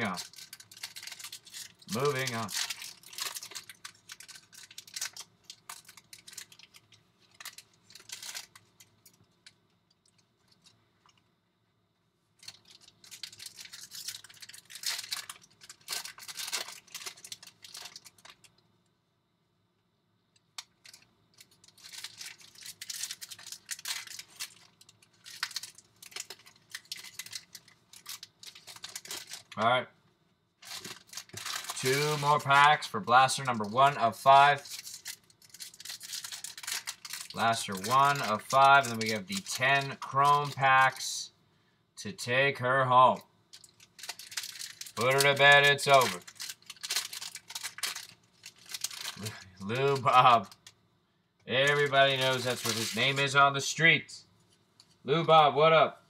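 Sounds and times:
foil wrappers tearing and crinkling: 0:00.0 - 0:08.7, 0:12.4 - 0:18.5, 0:20.6 - 0:29.6, 0:30.6 - 0:41.1, 0:43.5 - 0:50.7, 0:51.6 - 0:53.4.

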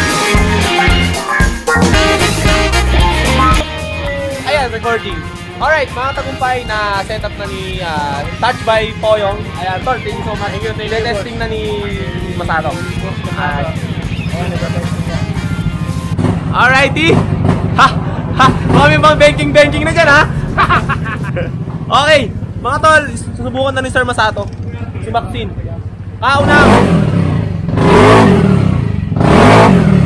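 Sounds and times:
background music: 0:00.0 - 0:20.8
scooter engine idling: 0:06.0 - 0:26.2.

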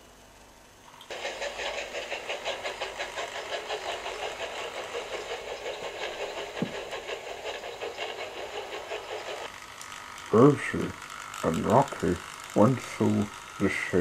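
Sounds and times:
model tank engine pulsing: 0:01.1 - 0:14.0.

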